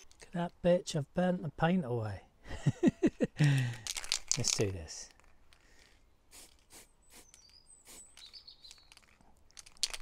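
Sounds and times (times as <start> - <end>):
birds chirping: 5.6 - 9.6
spray paint can hissing: 6.3 - 8.9.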